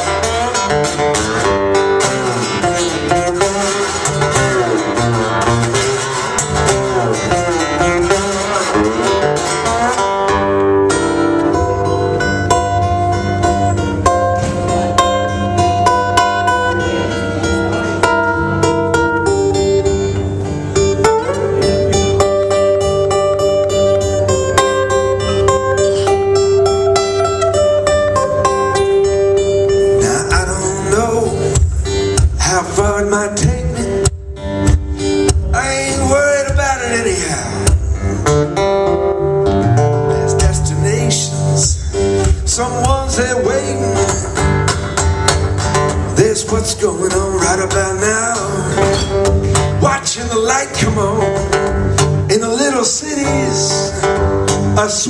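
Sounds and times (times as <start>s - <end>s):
acoustic guitars playing: 0.0s - 55.0s.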